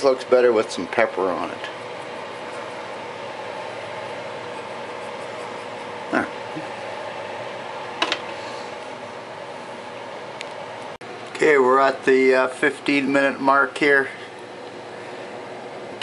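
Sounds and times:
electric fan humming: 0.0 - 16.0.

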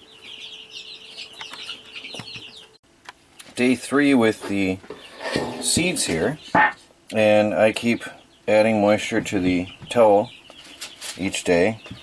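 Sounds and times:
bird chirping: 0.0 - 2.8, 4.5 - 12.0.

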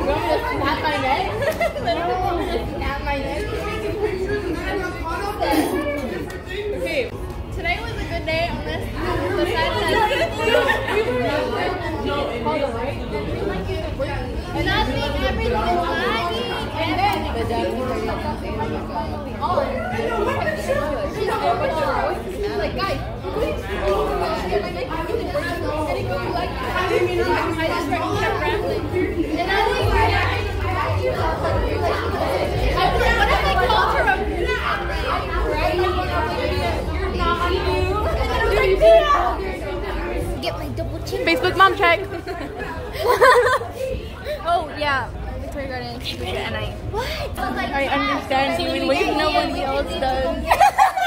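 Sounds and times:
young women chatting: 0.0 - 51.0.

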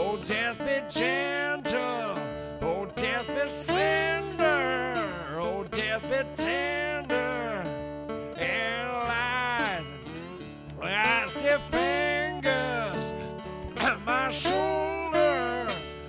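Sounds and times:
man singing: 0.0 - 10.2, 10.8 - 16.0
acoustic guitar: 0.0 - 16.0.

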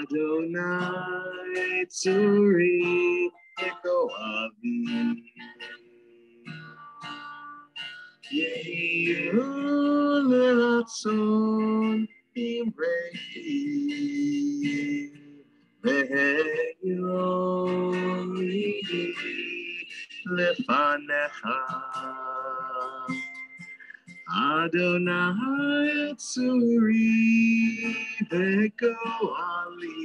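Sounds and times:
person singing a prayer melody: 0.0 - 7.6, 8.2 - 15.2, 15.8 - 30.0
acoustic guitar: 0.0 - 30.0.

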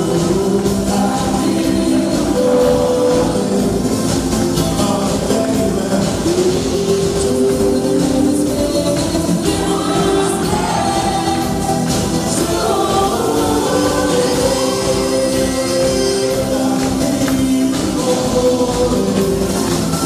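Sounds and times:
live band playing: 0.0 - 20.0
voices singing held notes: 0.0 - 20.0.

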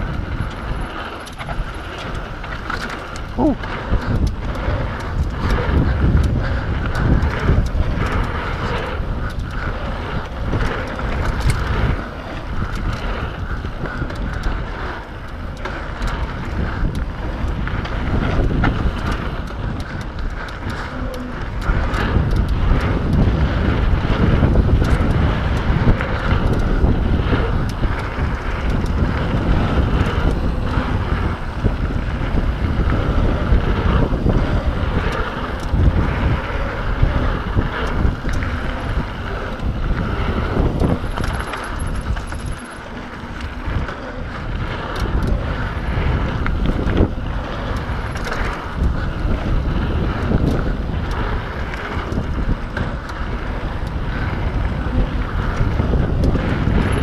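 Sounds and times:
bike clicks and rattles: 0.0 - 57.0
tyre noise on dirt trail: 0.0 - 57.0
wind rushing over microphone: 0.0 - 57.0.

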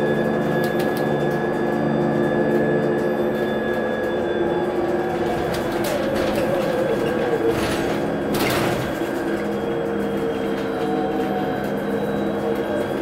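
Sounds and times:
electric motor whine: 0.0 - 13.0.

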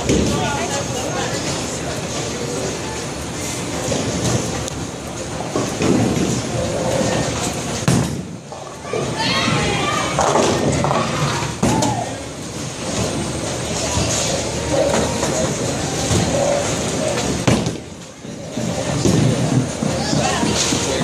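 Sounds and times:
voices chattering: 0.0 - 5.6, 8.5 - 21.0.

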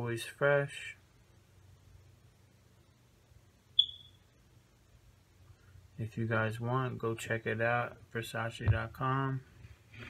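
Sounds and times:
high clear ping: 3.8 - 4.2.

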